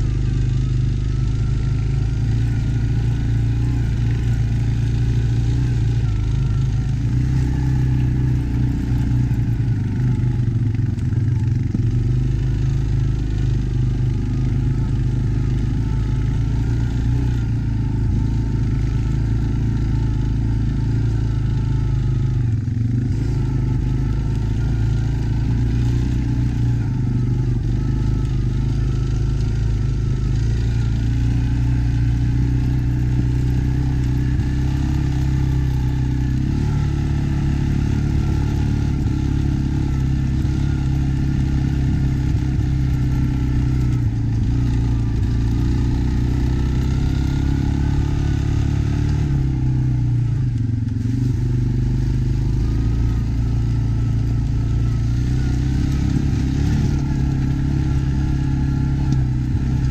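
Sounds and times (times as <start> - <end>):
atv engine running: 0.0 - 59.9.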